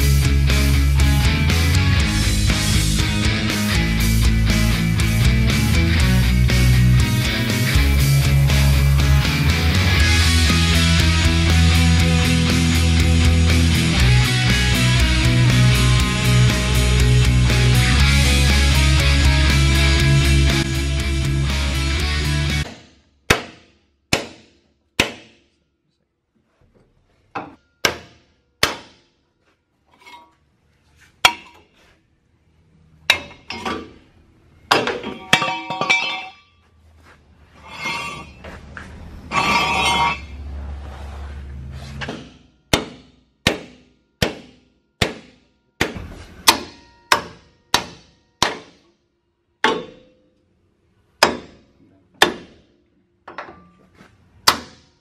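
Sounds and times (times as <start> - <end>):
hammer striking steel punch: 22.6 - 25.6, 27.4 - 29.2, 33.1 - 34.0, 34.7 - 36.4, 42.0 - 49.0, 49.6 - 50.3, 51.2 - 53.7, 54.4 - 55.0.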